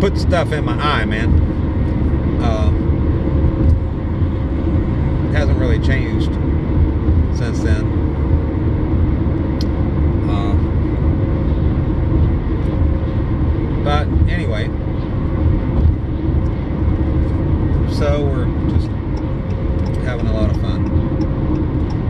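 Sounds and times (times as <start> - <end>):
car engine running: 0.0 - 22.0.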